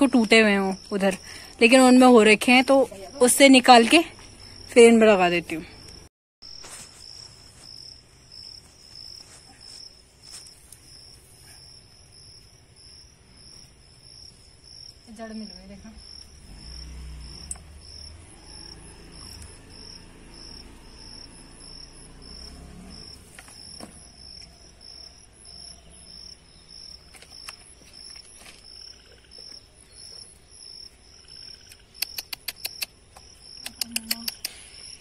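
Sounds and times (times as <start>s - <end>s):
insects chirping trill: 0.0s - 35.0s
sharp clicks: 31.6s - 34.7s.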